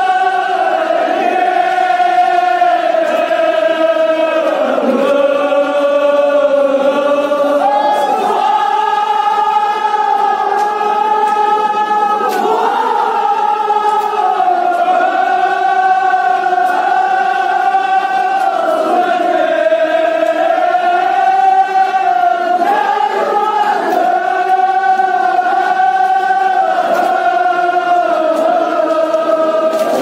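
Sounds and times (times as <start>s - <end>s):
men chanting in unison: 0.0s - 30.0s.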